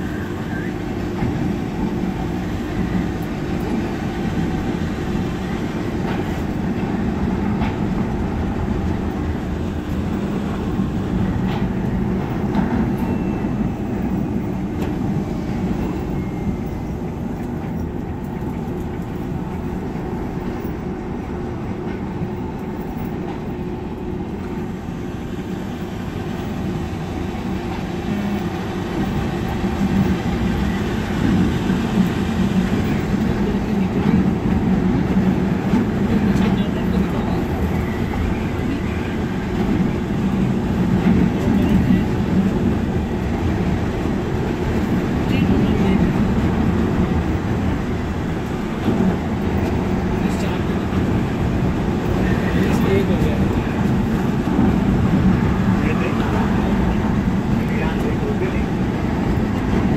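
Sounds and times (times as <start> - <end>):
monorail car rumble: 0.0 - 59.9.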